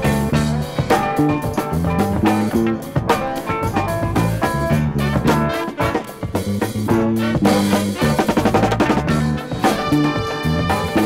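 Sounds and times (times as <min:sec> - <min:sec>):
funk instrumental: 0:00.0 - 0:11.0
quick drum hits: 0:00.0 - 0:11.0.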